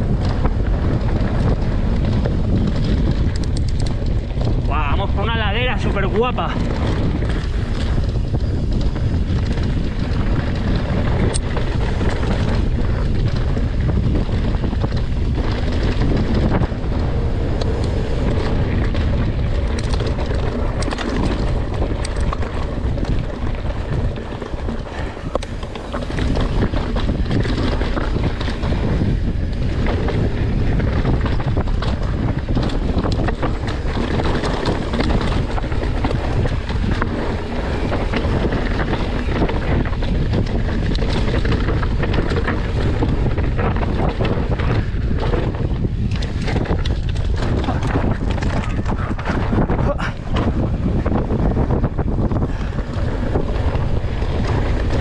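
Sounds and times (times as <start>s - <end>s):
bike rattling clicks: 0.0s - 55.0s
bike tyre noise: 0.0s - 55.0s
wind buffeting microphone: 0.0s - 55.0s.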